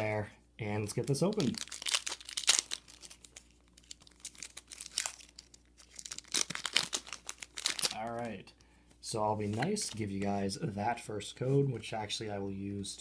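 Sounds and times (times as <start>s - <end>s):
foil wrapper crinkling and tearing: 0.9s - 8.3s.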